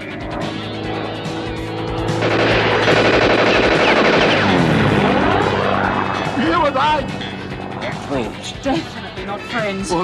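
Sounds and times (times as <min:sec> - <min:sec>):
propeller plane engine drone: 0:00.0 - 0:10.0
rapid machine-gun fire: 0:02.1 - 0:04.9.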